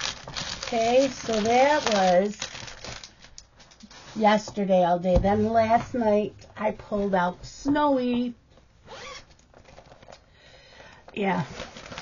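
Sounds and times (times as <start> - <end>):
fabric bag rustling and crinkling: 0.0 - 4.4, 8.9 - 10.2, 11.2 - 12.0.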